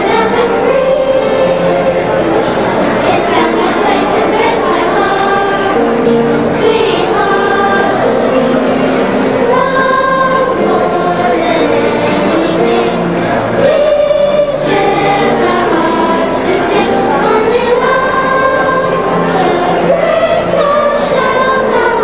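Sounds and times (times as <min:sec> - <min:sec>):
children's choir singing: 0:00.0 - 0:22.0.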